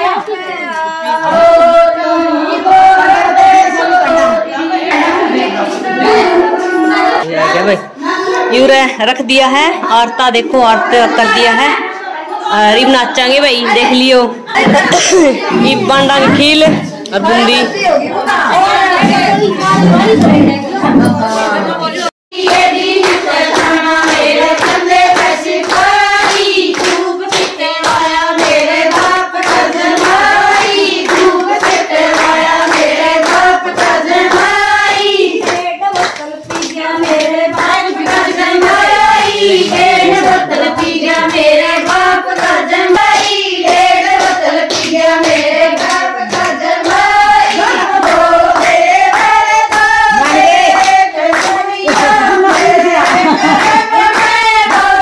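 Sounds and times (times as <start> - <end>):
women singing folk song: 0.0 - 7.2, 10.4 - 55.0
rhythmic hand-clapping: 0.0 - 7.3, 12.4 - 55.0.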